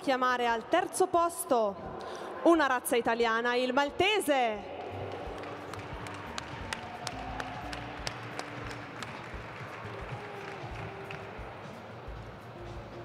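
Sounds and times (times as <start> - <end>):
soft background music: 0.0 - 13.0
audience applause: 4.8 - 11.8.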